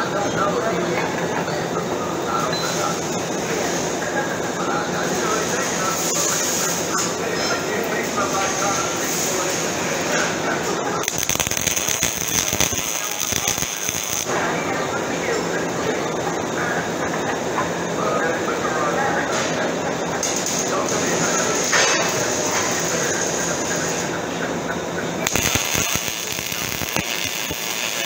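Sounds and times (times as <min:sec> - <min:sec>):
welding arc crackling: 0:11.0 - 0:14.4, 0:20.2 - 0:24.1, 0:25.2 - 0:28.0.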